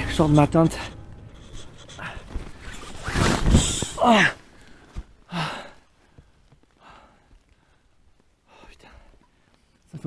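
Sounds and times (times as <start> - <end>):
nylon tent fabric rustling: 1.4 - 5.3
zipper being pulled: 2.4 - 4.0.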